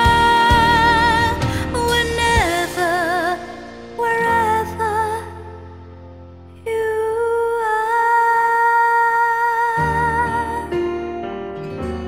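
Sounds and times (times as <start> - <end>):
soft pop ballad backing track: 0.0 - 12.0.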